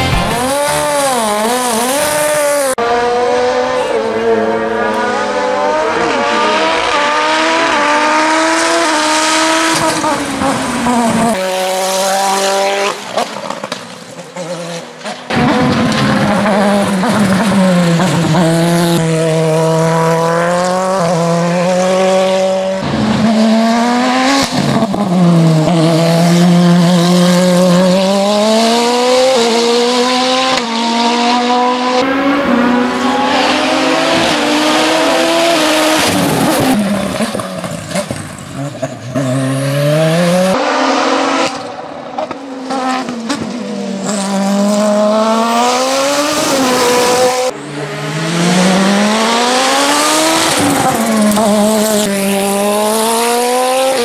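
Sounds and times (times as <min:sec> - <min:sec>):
race car engine at full throttle: 0:00.0 - 0:54.0.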